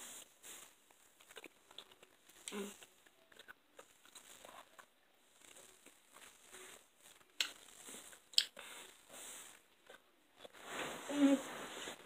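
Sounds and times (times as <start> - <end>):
boy chewing with mouth closed: 1.2 - 10.6
soft breaths: 5.2 - 12.0.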